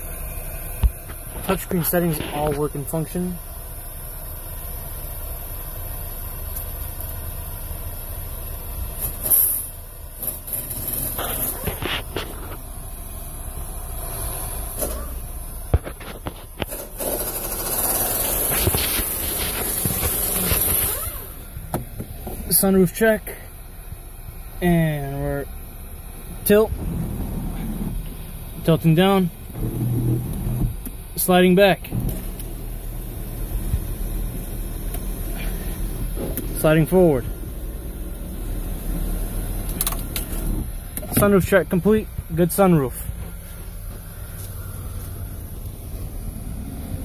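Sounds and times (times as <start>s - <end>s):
car running inside cabin: 0.0s - 47.0s
sunroof motor humming: 11.4s - 22.6s, 31.9s - 41.3s.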